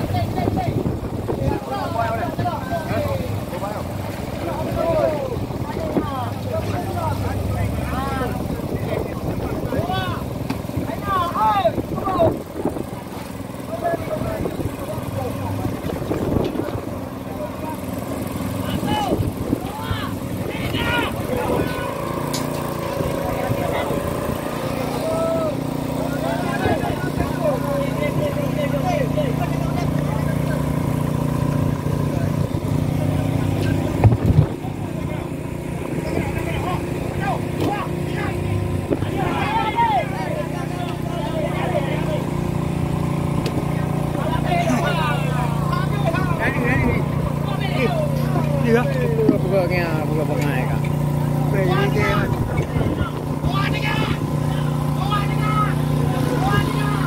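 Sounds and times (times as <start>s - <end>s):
boat engine running: 0.0s - 57.0s
crew shouting: 9.6s - 12.5s, 18.5s - 31.0s, 36.0s - 49.3s, 50.4s - 57.0s.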